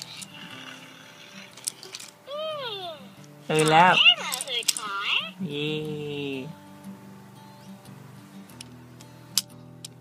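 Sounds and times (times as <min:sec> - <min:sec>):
toy handling clicks and rustles: 0:00.0 - 0:02.3, 0:03.2 - 0:05.3, 0:08.6 - 0:10.0.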